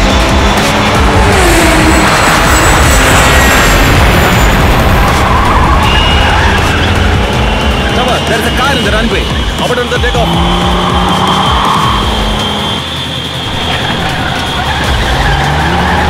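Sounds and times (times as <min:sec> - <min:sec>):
engine racing: 0:00.0 - 0:16.0
loud background music: 0:00.0 - 0:16.0
tyres squealing: 0:00.0 - 0:16.0.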